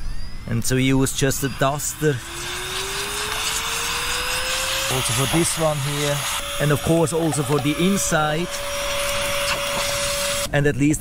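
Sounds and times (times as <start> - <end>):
motor whine rising in pitch: 0.0 - 10.5
air duster blowing air: 1.1 - 10.5.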